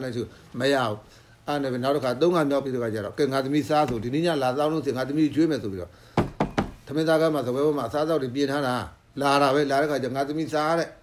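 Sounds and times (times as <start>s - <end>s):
man speaking: 0.0s - 6.0s, 6.8s - 11.0s
sharp loud knocks: 6.2s - 6.8s.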